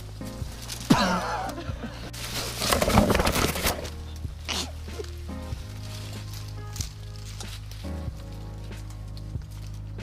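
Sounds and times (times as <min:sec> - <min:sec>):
background music: 0:00.0 - 0:10.0
rustling through brush: 0:00.0 - 0:10.0.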